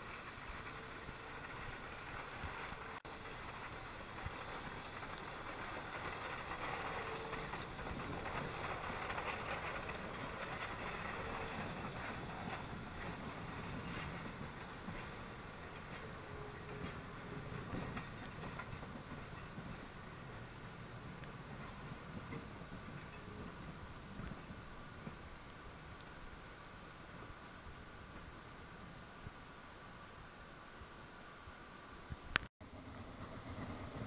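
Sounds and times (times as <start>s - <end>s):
train wheels clicking over rail joints: 0.0s - 26.2s
steam locomotive clattering: 0.0s - 30.8s, 32.2s - 34.0s.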